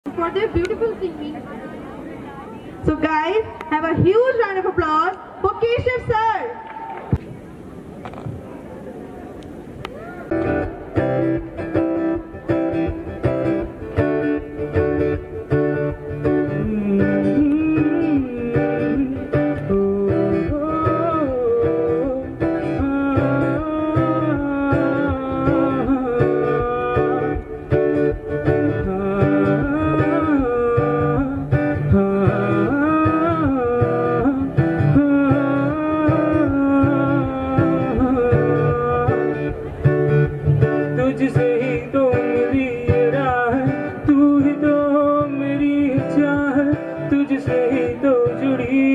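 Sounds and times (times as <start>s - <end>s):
guitar-led accompaniment: 9.2s - 48.9s
man singing through speakers: 16.4s - 27.8s, 28.4s - 39.7s, 40.7s - 48.9s.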